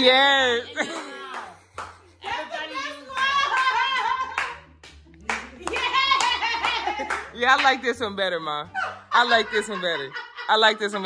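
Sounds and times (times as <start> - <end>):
hand clapping: 0.8 - 2.1, 3.1 - 7.8.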